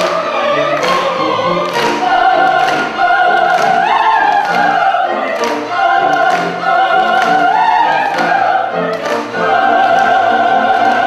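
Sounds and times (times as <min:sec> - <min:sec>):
chamber orchestra: 0:00.0 - 0:11.0
operatic voices singing: 0:00.0 - 0:11.0.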